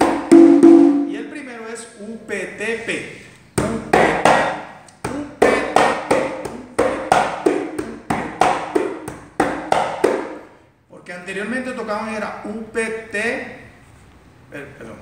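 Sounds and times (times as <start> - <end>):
conga played with hands: 0.0 - 1.2, 3.6 - 10.5.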